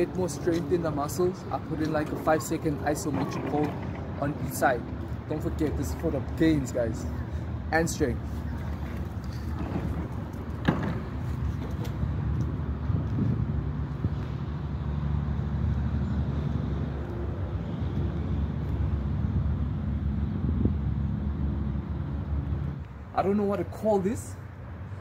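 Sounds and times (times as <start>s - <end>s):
vehicle engine humming: 0.0s - 25.0s.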